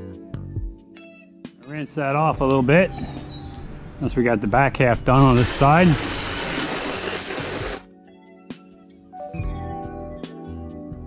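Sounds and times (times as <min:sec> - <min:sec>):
soft background music: 0:00.0 - 0:06.3, 0:06.9 - 0:11.0
hose water spraying: 0:04.5 - 0:07.8.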